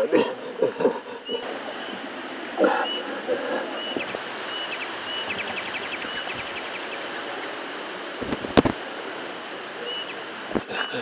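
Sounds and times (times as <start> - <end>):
outdoor ambience hiss: 0.0 - 11.0
faint high chirps: 1.2 - 11.0.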